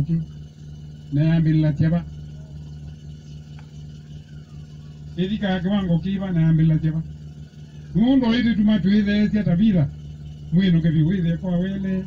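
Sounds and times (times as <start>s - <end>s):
amplifier electrical hum: 0.0s - 12.0s.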